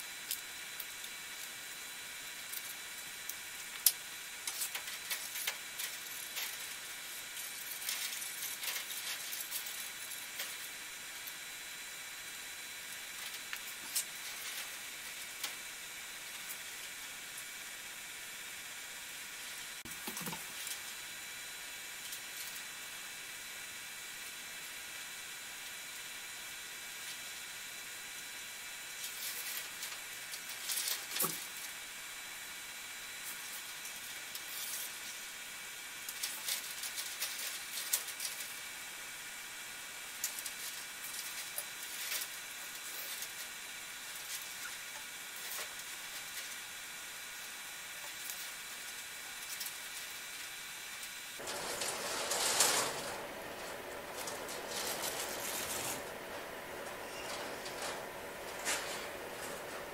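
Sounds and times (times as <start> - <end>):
steady background hiss: 0.0 - 59.9
plastic light strip rustling: 51.4 - 59.9.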